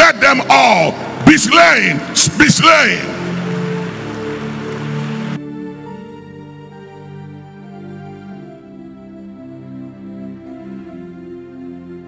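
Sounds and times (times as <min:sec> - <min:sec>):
soft keyboard pad chords: 0:00.0 - 0:12.0
steady hiss-like noise: 0:02.1 - 0:06.2.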